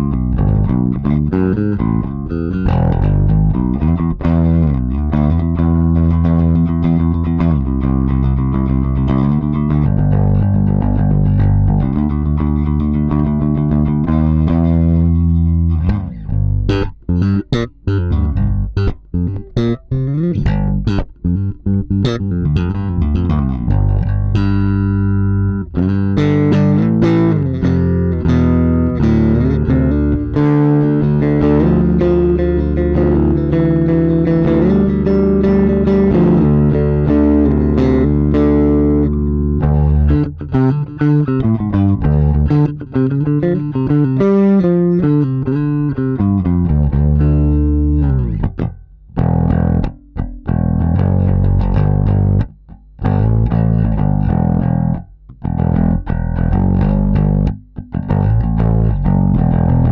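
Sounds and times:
electric bass solo: 0.0 - 59.9.

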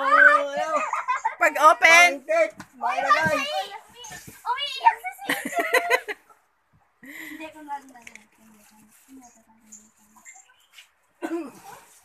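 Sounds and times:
children talking and calling out: 0.0 - 6.3, 7.1 - 12.0.

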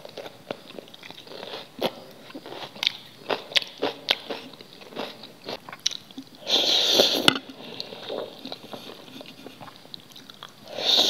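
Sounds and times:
noodles slurp: 6.4 - 11.0.

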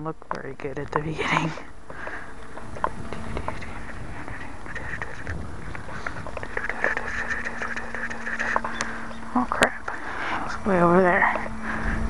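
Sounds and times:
model plane motor drone: 0.0 - 12.0
wind rumble on microphone: 0.3 - 12.0.

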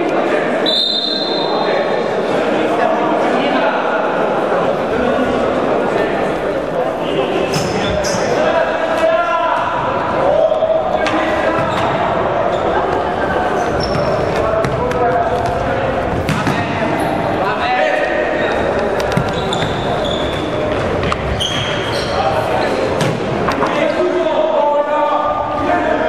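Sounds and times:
shoes squeaking on court: 11.5 - 15.0, 18.9 - 23.2.

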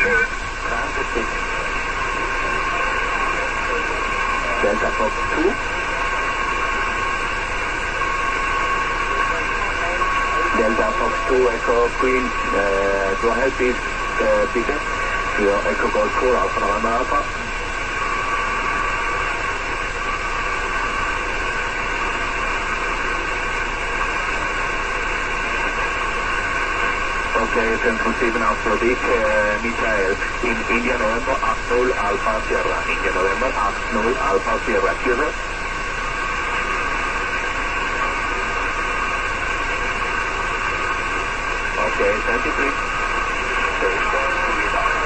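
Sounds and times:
radio receiver static hiss: 0.0 - 45.0.

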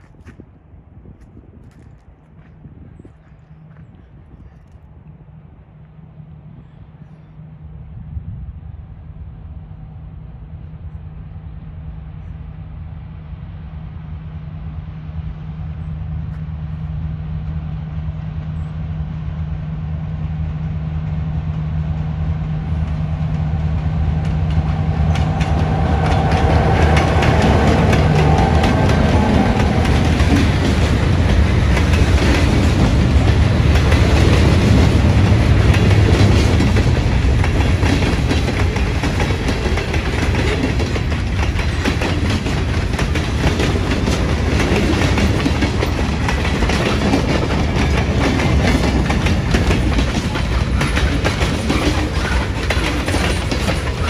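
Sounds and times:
diesel locomotive engine drone: 0.0 - 54.0
freight train cars rumbling: 0.0 - 54.0
wheels clicking over rail joints: 24.1 - 54.0.

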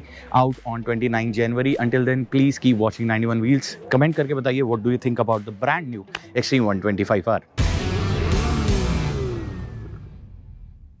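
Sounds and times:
sports car engine revving: 7.6 - 10.5.

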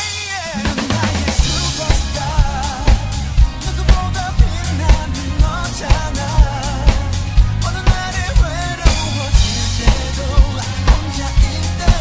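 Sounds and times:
pop song backing track: 0.0 - 12.0.

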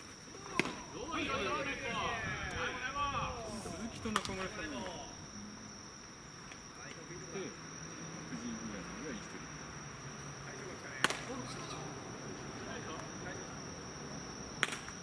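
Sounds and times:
insects trilling: 0.0 - 15.0
baseball bat crack: 0.4 - 0.9, 4.1 - 4.4, 11.0 - 11.6, 14.6 - 15.0.

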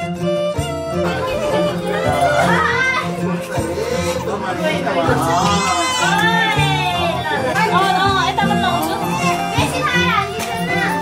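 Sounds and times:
background music: 0.0 - 11.0
adult voices: 1.0 - 11.0
baby crying: 1.1 - 7.2.

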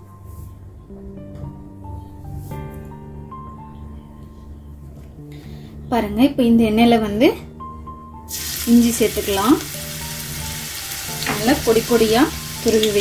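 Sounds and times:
ginger sizzling in hot oil: 8.3 - 13.0.

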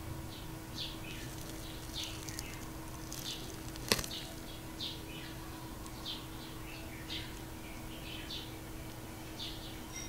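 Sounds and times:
small birds chirping: 0.2 - 10.0.

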